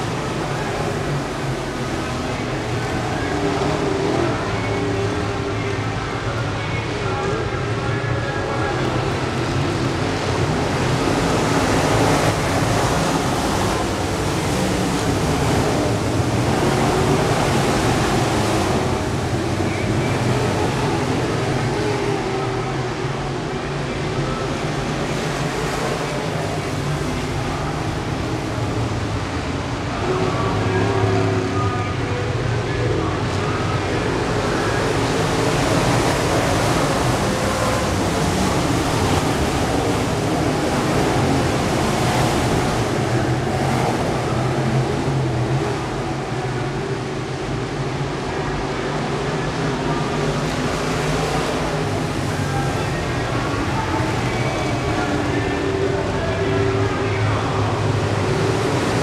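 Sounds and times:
race car engines: 0:00.0 - 0:59.0
voices: 0:00.0 - 0:59.0.

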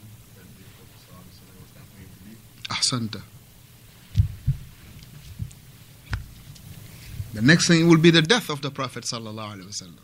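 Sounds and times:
low steady hiss: 0:00.0 - 0:10.0
dull low thumps: 0:04.1 - 0:06.4.

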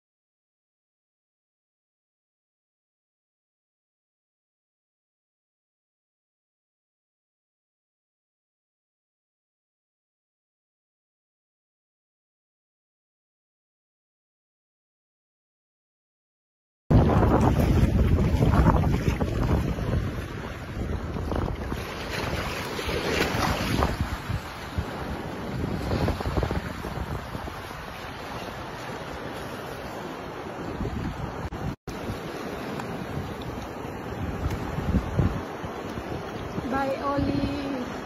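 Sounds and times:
shallow sea water washing: 0:16.9 - 0:38.0
wind buffeting microphone: 0:16.9 - 0:38.0.

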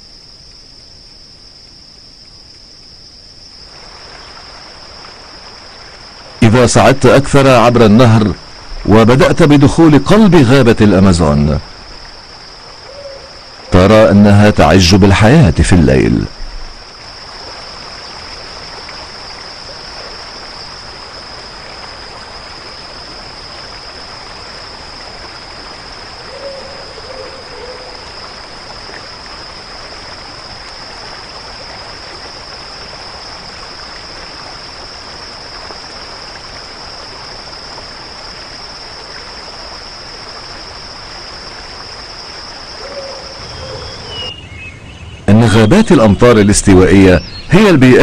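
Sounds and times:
constant hiss: 0:00.0 - 0:48.0
high-pitched insect chorus: 0:00.0 - 0:48.0
low animal call: 0:12.8 - 0:13.8, 0:26.2 - 0:28.1, 0:42.8 - 0:45.3.

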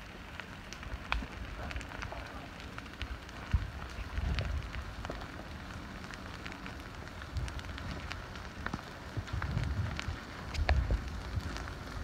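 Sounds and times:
lava crackling and popping: 0:00.0 - 0:12.0
low rumbles: 0:00.0 - 0:12.0.

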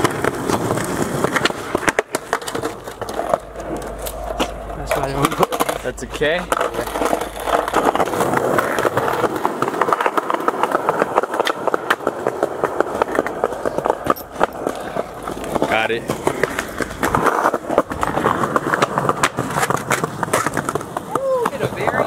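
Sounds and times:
skateboard clacks: 0:00.0 - 0:22.0
skateboard wheels rolling on pavement: 0:00.0 - 0:22.0.

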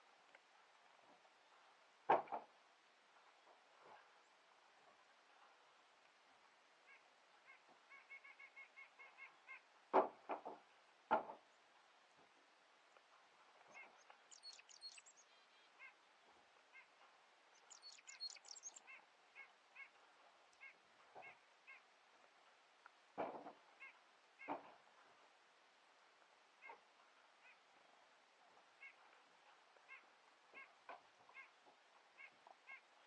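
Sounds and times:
faint bird calls: 0:06.8 - 0:10.5, 0:12.9 - 0:21.9, 0:23.3 - 0:24.8, 0:26.6 - 0:33.0
high rapid bird twittering: 0:13.7 - 0:15.9, 0:17.5 - 0:19.9.

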